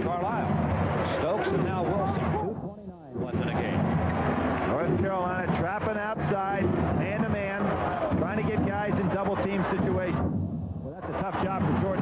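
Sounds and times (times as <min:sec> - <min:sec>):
arena crowd noise: 0:00.0 - 0:10.2
commentator talking: 0:04.7 - 0:10.2, 0:10.8 - 0:12.0.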